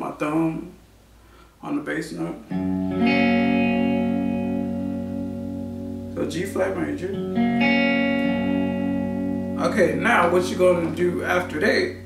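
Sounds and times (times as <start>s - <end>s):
electric guitar chord ringing: 2.4s - 12.0s.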